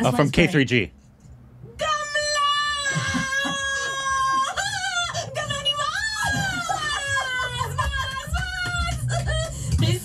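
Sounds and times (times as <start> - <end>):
woman mock-crying wail: 2.4 - 8.4.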